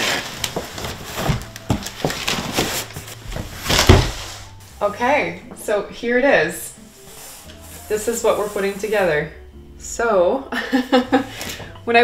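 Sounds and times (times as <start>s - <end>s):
cardboard boxes scraping: 0.0s - 4.8s, 6.8s - 9.1s
box thumping down: 0.5s - 4.5s.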